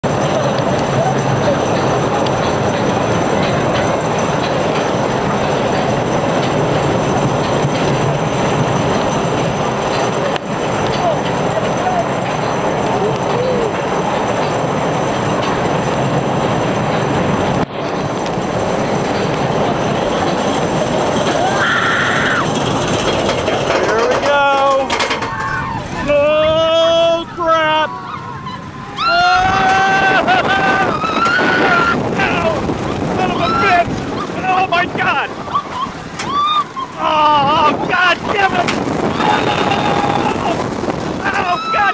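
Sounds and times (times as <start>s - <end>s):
roller coaster lift hill rattle: 0.0s - 41.9s
faint voices: 23.6s - 41.9s
wind on microphone: 25.2s - 41.9s.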